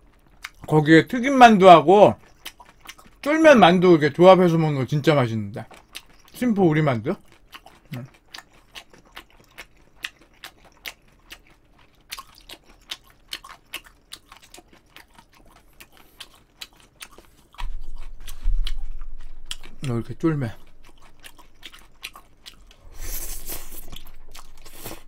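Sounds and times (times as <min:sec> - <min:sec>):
chewing food: 0:00.0 - 0:00.8, 0:01.6 - 0:25.0
wet mouth clicks: 0:15.8 - 0:20.0, 0:20.6 - 0:25.0
deep rumble: 0:17.6 - 0:21.3.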